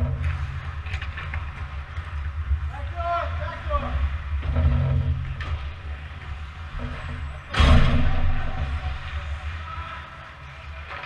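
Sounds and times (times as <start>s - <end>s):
loud rush of noise: 0.0s - 11.0s
low arena rumble: 0.0s - 11.0s
skate and stick noise: 0.0s - 11.0s.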